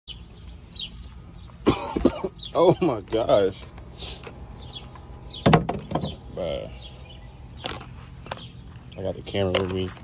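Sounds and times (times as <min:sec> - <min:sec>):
man coughing: 0:01.6 - 0:03.0.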